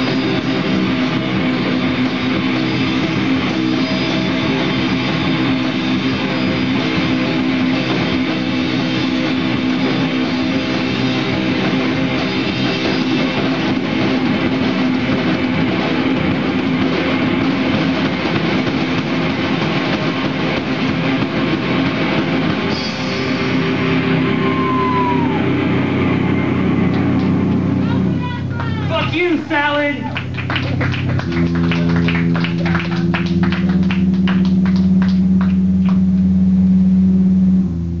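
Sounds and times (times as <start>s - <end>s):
drum kit: 0.0s - 38.0s
electric guitar: 0.0s - 38.0s
steady held pitch: 0.0s - 38.0s
drum hits: 30.6s - 36.4s.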